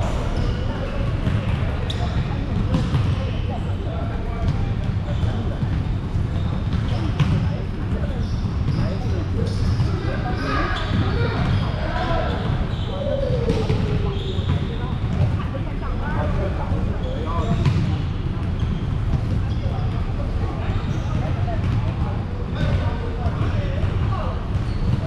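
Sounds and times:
players' voices: 0:00.0 - 0:25.0
volleyball hits and bounces: 0:01.1 - 0:03.3.

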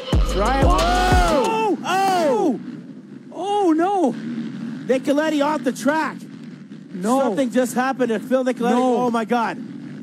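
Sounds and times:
hip-hop music: 0:00.0 - 0:01.7
commentators exclaiming: 0:00.3 - 0:02.7.

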